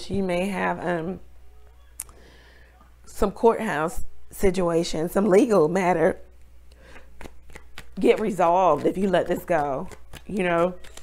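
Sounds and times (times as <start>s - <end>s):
cards clicking and flicking: 7.1s - 11.0s.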